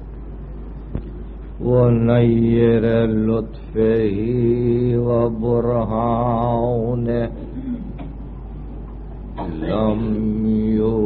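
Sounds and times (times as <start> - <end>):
tape hum: 0.0 - 11.0
man chanting: 1.6 - 7.6, 9.4 - 11.0.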